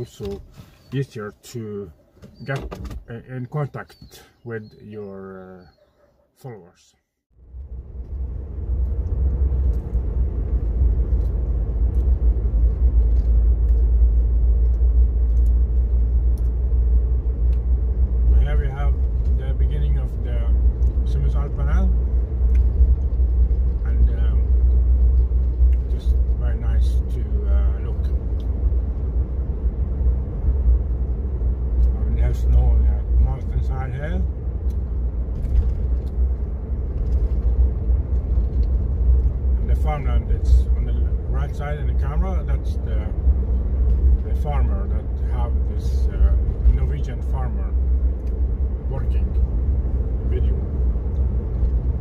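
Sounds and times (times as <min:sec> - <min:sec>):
car engine and tyre rumble: 0:00.0 - 0:06.7, 0:07.3 - 0:52.0.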